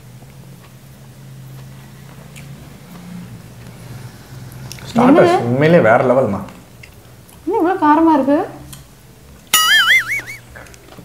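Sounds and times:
high-pitched wobbling squeal: 9.6 - 10.5.

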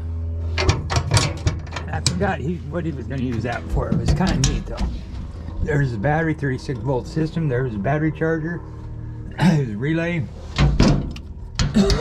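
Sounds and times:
steady low hum: 0.0 - 12.0
metal lid latch clicks and knocks: 0.6 - 2.2, 3.2 - 4.9, 10.6 - 12.0.

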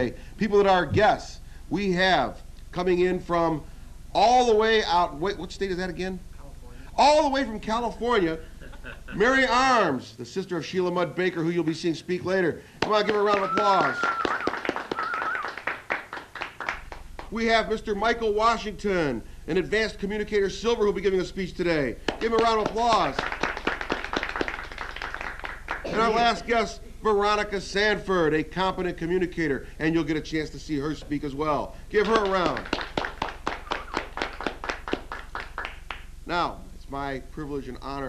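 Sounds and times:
small group applauding: 12.8 - 17.4, 22.0 - 26.4, 32.0 - 36.1
hands clapping: 12.8 - 17.6, 22.0 - 26.4, 32.0 - 36.1.

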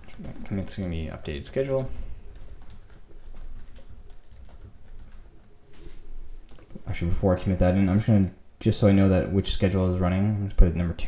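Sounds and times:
computer keyboard typing: 0.0 - 5.5.

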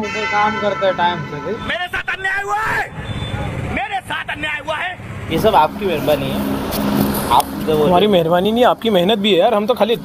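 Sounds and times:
road traffic rumble: 0.0 - 10.0
man speaking: 3.8 - 6.5.

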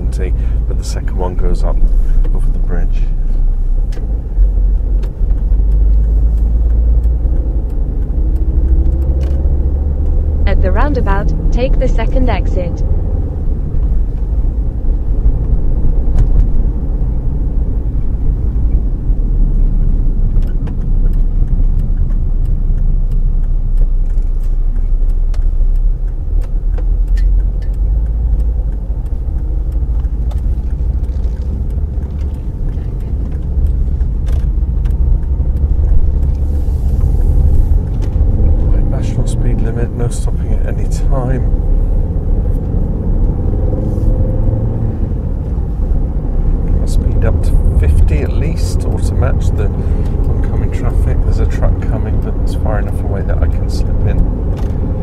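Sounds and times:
car road and engine rumble: 0.0 - 55.0
sharp clicks and squeaks: 0.0 - 55.0.

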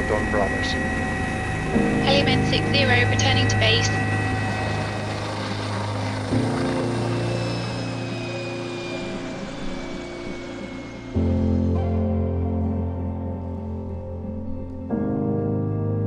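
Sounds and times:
helicopter rotor and turbine: 0.0 - 14.9
thin whine falling in pitch: 0.0 - 14.9
sustained low music chords: 0.0 - 16.0.

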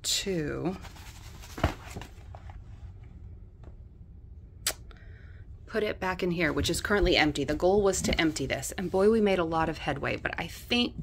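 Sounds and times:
handling photo envelope and album: 0.7 - 2.8.

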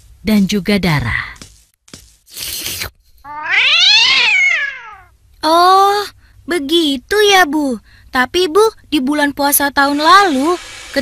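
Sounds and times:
cat meowing: 3.3 - 5.1.

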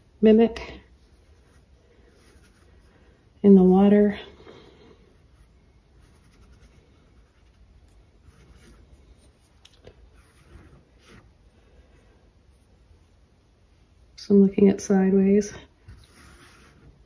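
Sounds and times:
paintbrush brushing on canvas: 0.9 - 4.0, 5.0 - 13.2, 15.9 - 17.0.

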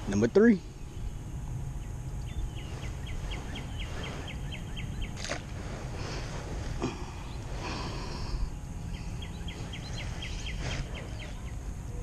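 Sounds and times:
low outdoor noise: 0.0 - 12.0
bird chirping: 0.7 - 5.3, 8.8 - 12.0.

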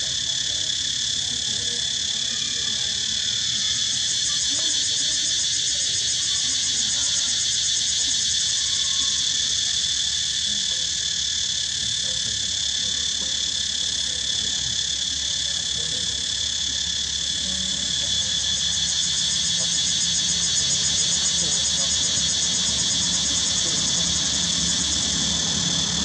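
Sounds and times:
insects trilling: 0.0 - 26.0.

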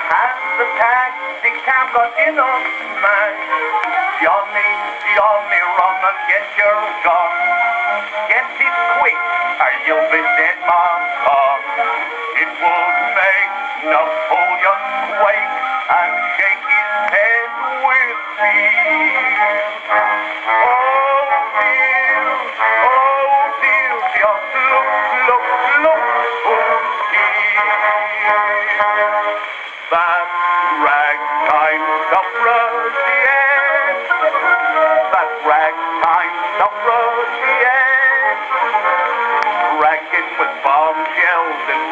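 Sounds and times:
ragtime music on gramophone: 0.0 - 41.9.

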